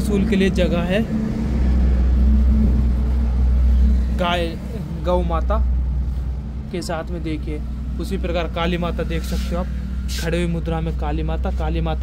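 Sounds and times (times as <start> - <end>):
low rumble with hum: 0.0 - 12.0.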